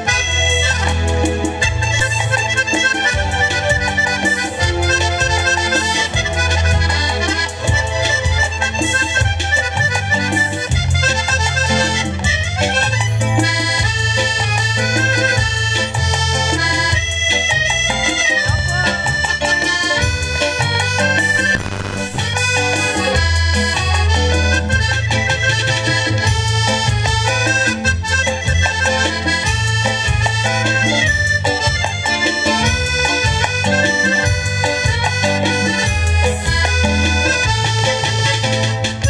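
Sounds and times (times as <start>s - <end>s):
piano accordion playing lively tune: 0.0s - 39.0s.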